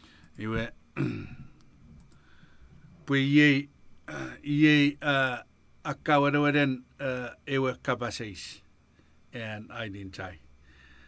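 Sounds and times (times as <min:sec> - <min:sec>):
faint clicks: 0:01.5 - 0:02.3.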